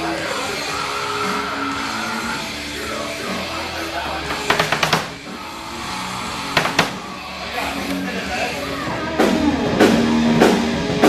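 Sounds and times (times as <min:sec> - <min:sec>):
loud drum strikes: 0:06.5 - 0:07.1.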